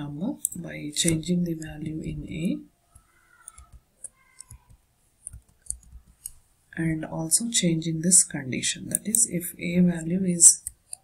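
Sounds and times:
computer keyboard keys clicking: 3.0s - 6.4s.

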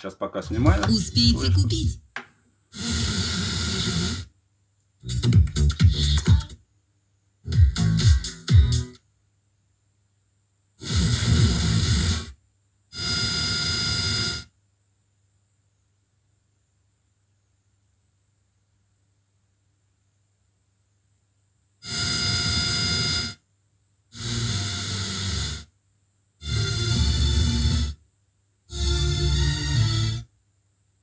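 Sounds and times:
radio broadcasts through speakers: 0.0s - 2.0s
faint low hum: 0.0s - 31.0s.

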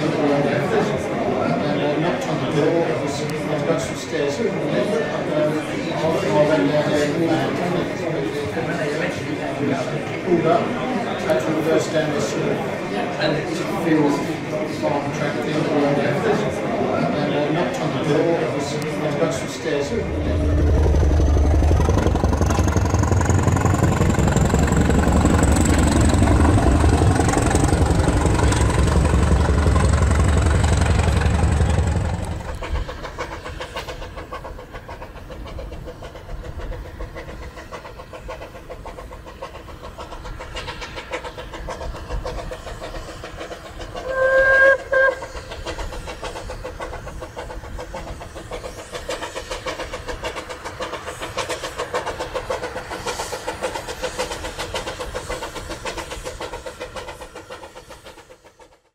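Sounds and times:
diesel train rumbling: 0.0s - 58.9s
train wheels clattering: 18.8s - 58.9s
train horn blast: 44.0s - 45.2s.

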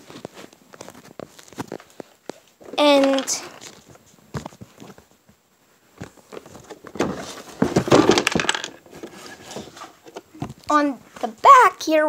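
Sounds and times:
objects rustling and knocking: 0.0s - 11.4s.

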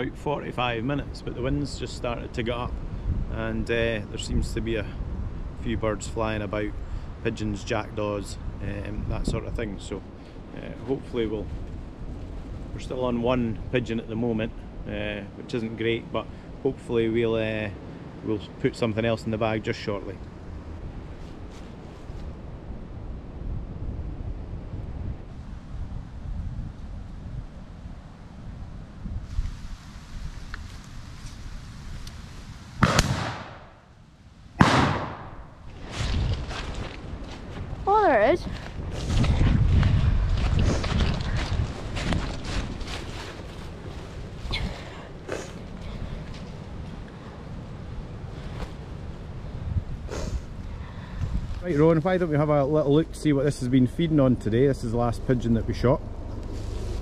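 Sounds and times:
shotgun shots with echo: 32.8s - 33.8s, 34.6s - 35.5s.

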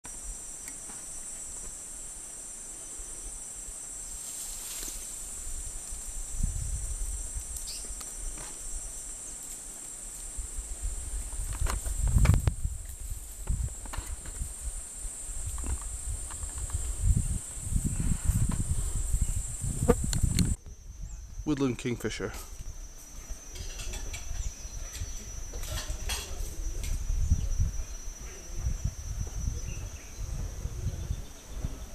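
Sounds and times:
insects droning: 0.0s - 31.9s.

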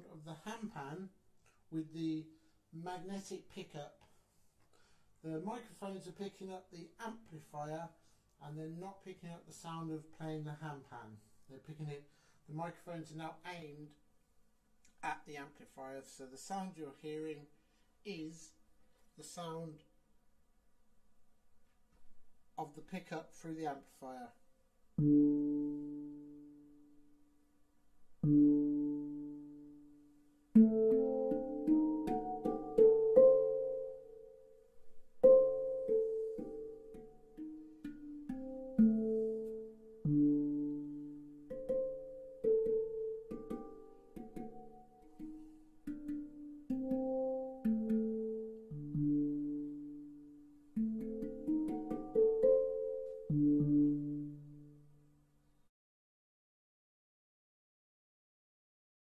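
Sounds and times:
handpan notes ringing: 25.0s - 26.6s, 28.2s - 30.0s, 30.6s - 34.6s, 35.2s - 54.9s.

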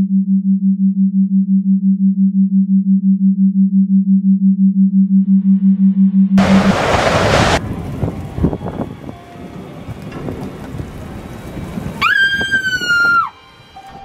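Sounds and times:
sudden loud rush of noise: 6.4s - 12.8s
long high-pitched scream: 11.9s - 14.0s.

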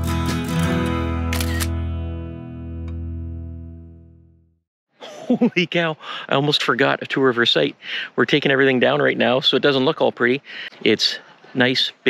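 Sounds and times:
acoustic guitar music: 0.0s - 4.3s
camera shutter click: 1.3s - 1.8s.

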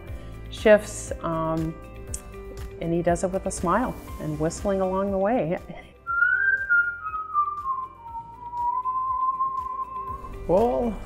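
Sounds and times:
man whistling a tune: 6.0s - 10.4s.

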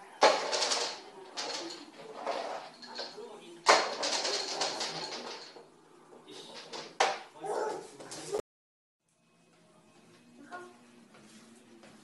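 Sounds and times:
push toy clattering on hard floor: 0.2s - 5.6s, 6.5s - 7.2s.

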